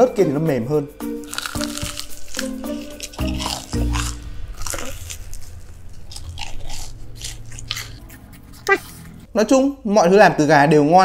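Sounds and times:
background music: 0.0 - 11.0
crunchy biting and chewing: 1.1 - 9.3.

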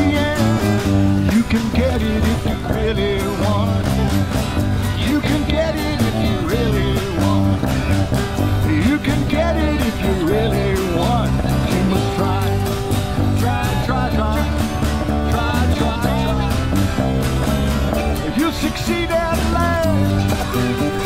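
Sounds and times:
acoustic guitar: 0.0 - 21.0
live band playing upbeat song: 0.0 - 21.0
sliding melody line: 0.0 - 21.0.

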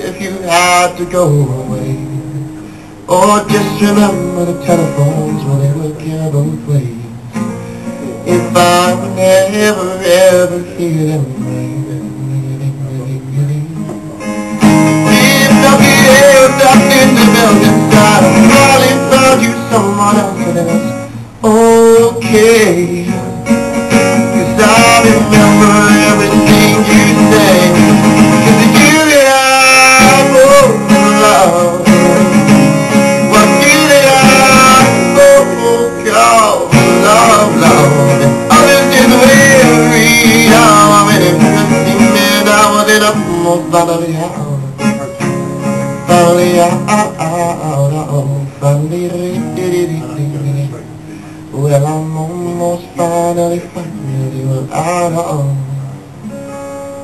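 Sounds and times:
acoustic guitar playing: 0.0 - 57.0.

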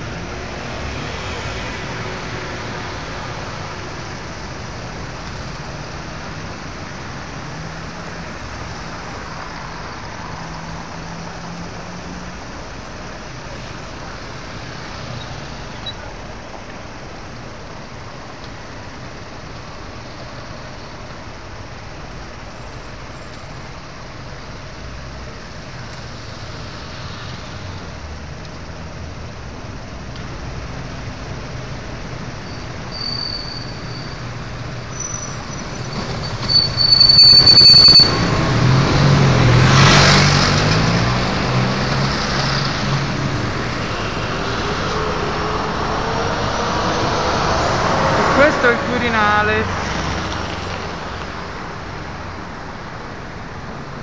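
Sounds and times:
city street traffic: 0.0 - 54.0
heavy vehicle brakes squealing: 32.4 - 38.4
heavy vehicle engine passing: 37.4 - 51.8.

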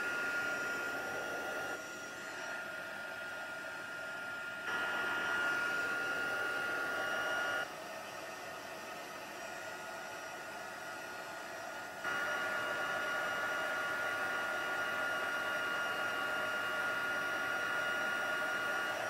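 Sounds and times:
heat tool blowing whine: 0.0 - 8.3, 9.2 - 19.0.

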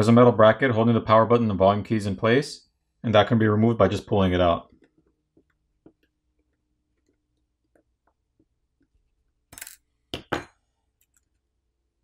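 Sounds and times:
metal piece clinking on hard surface: 9.5 - 11.3.

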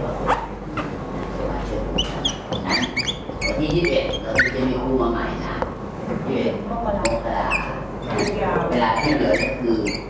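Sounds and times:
whiteboard marker squeaking: 1.9 - 4.9, 7.0 - 10.0.

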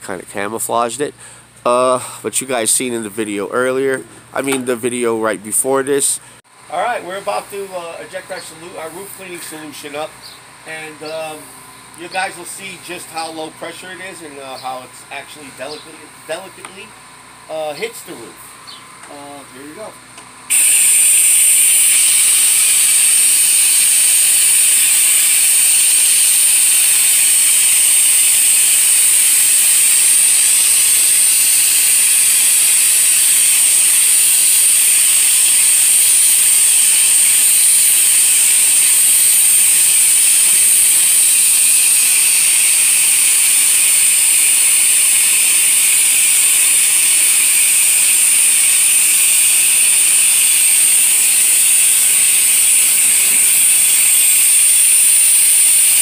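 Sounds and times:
spray wand hissing: 20.5 - 56.0.

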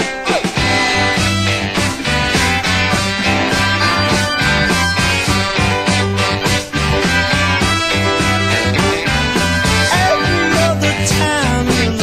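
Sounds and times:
rock guitar: 0.0 - 12.0
drum beat: 0.4 - 12.0
bass notes: 0.6 - 12.0.

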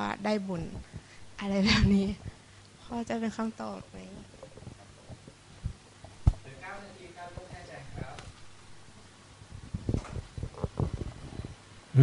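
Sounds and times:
dull low thumps: 4.2 - 6.5, 9.4 - 11.6.

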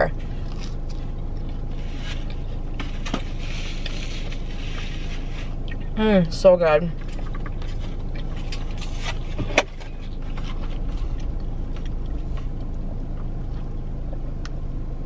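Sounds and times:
car engine running rumble: 0.0 - 15.0.

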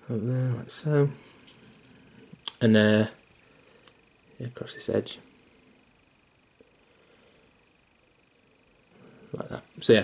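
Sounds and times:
faint high-pitched tone: 4.4 - 5.2.

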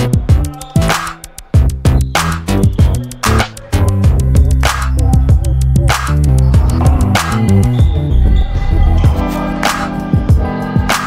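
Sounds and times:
heavy bass line: 3.8 - 10.1.

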